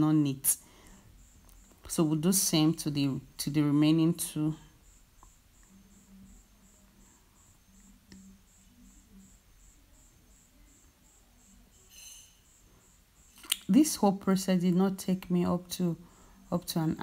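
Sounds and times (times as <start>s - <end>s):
soft low hum: 0.0s - 17.0s
faint high-pitched chirps: 0.4s - 14.1s.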